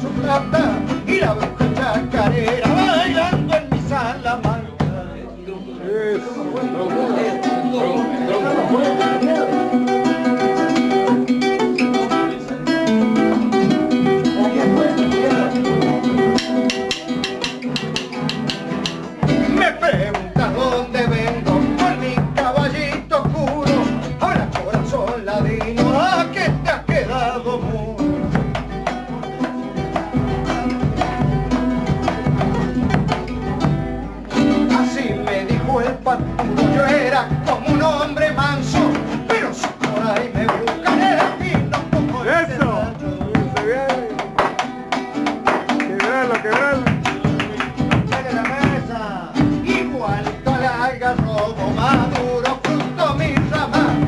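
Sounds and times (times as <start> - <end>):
deep drum: 0.0 - 5.2, 16.1 - 45.8, 46.5 - 54.0
strummed guitar: 0.0 - 54.0.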